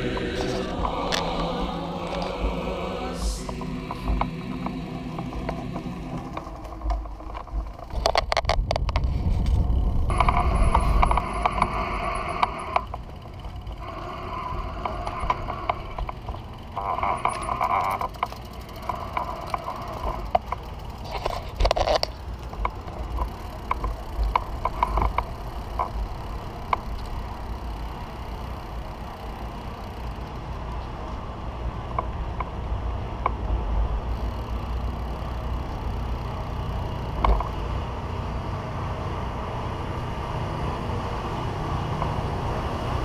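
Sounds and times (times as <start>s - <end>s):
drivetrain mechanical clicking: 0.0s - 37.9s
rolling rumble: 0.0s - 43.0s
wind on microphone: 3.2s - 12.9s.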